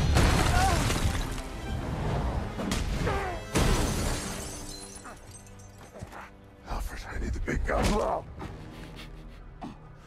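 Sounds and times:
glass shattering and tinkling: 0:03.7 - 0:06.0.

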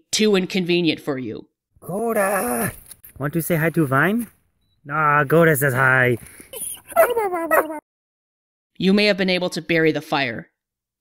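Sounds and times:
dog whining: 0:06.5 - 0:07.8.

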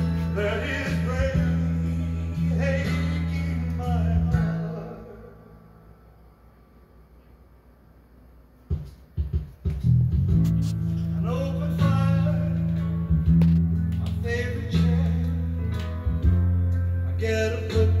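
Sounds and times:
guitar song through a speaker: 0:00.0 - 0:06.1, 0:08.6 - 0:18.0.

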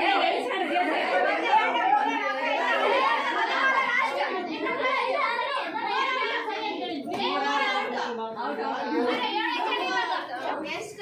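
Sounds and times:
women chattering: 0:00.0 - 0:11.0.

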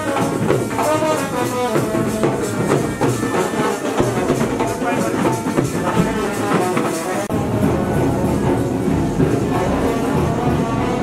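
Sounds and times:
brass horns melody: 0:00.0 - 0:11.0
drum beats: 0:00.0 - 0:11.0.

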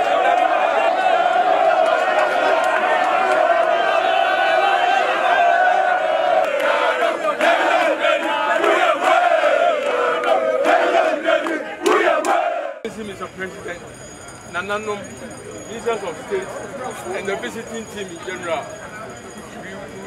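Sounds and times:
crowd shouting and cheering: 0:00.0 - 0:12.9.

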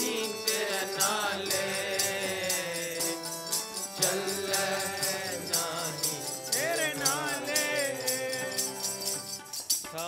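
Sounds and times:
voices singing: 0:00.0 - 0:09.3
harmonium held notes: 0:00.0 - 0:09.6
steady percussion beat: 0:00.0 - 0:10.0.

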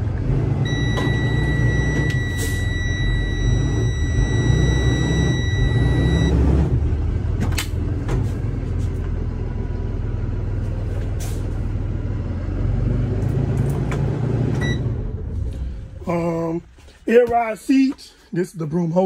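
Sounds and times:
diesel engine idling: 0:00.0 - 0:12.7
high warning beep: 0:00.7 - 0:06.4, 0:14.6 - 0:14.9.

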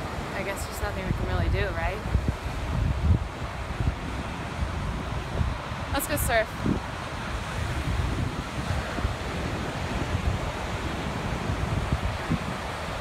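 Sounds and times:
ocean surf breaking: 0:00.0 - 0:13.0
wind buffeting microphone: 0:00.0 - 0:13.0.

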